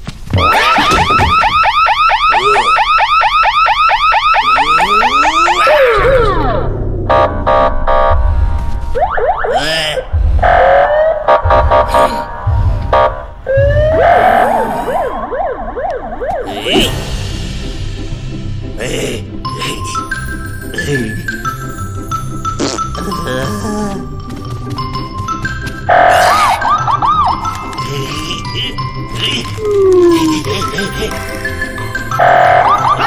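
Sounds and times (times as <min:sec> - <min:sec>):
cartoon music: 0:00.4 - 0:03.0, 0:04.2 - 0:06.7, 0:18.7 - 0:33.0
warbling electronic alarm: 0:00.4 - 0:16.5, 0:25.9 - 0:27.5, 0:32.1 - 0:33.0
low thumps: 0:06.0 - 0:16.4.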